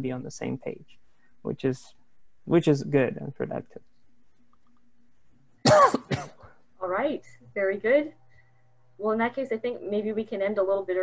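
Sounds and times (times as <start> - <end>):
man coughing: 5.6 - 6.5.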